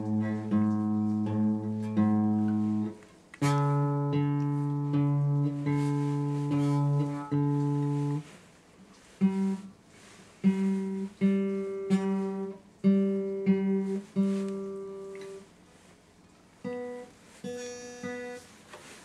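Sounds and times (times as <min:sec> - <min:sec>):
guitar chords: 0:00.0 - 0:08.3, 0:09.2 - 0:09.8, 0:10.4 - 0:15.5, 0:16.6 - 0:19.0.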